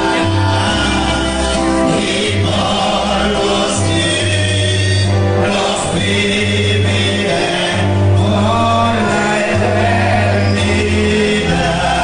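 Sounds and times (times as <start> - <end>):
deep sustained bass notes: 0.0 - 12.0
guitar: 0.0 - 12.0
men singing together: 0.0 - 12.0.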